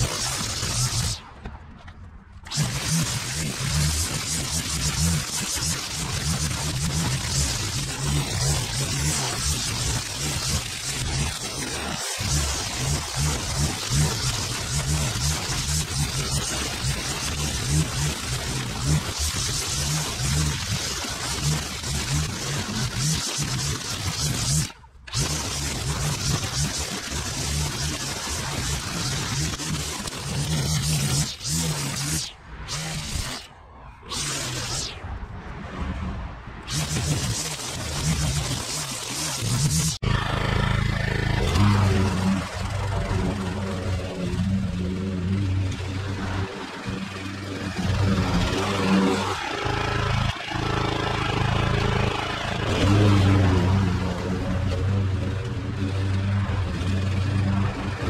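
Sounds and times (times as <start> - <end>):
string trimmer cutting grass: 0.0 - 1.2, 2.4 - 33.5, 34.1 - 35.0, 36.6 - 58.0.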